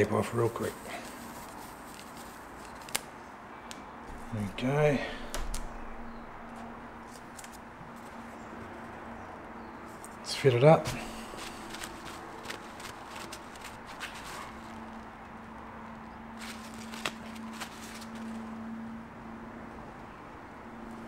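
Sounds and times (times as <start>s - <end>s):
faint low hum: 4.0s - 9.8s.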